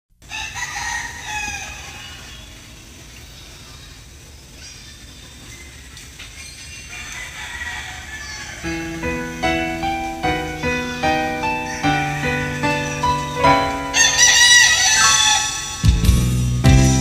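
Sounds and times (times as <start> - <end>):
rooster crowing: 0.2 - 2.5, 6.9 - 16.1.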